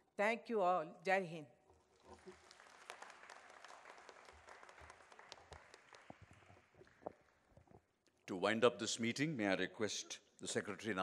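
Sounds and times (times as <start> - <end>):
faint audience applause: 2.0 - 7.7.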